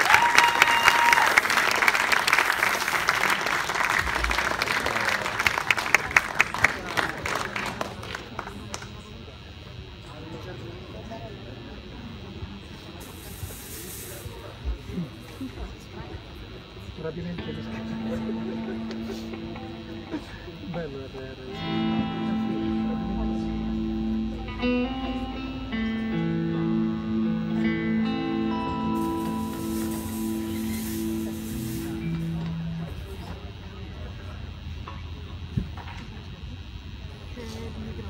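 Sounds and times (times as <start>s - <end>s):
rock band sustained chord: 16.8s - 35.4s.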